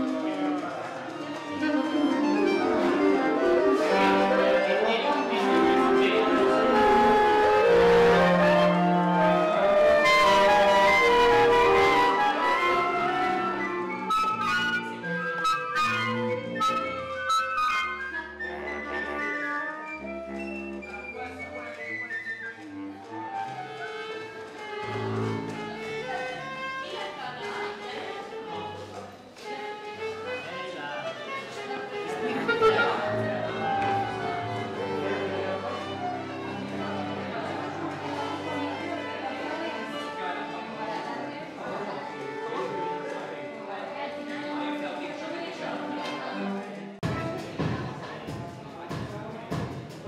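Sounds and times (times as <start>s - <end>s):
orchestral music: 0.0s - 27.4s, 31.8s - 41.3s.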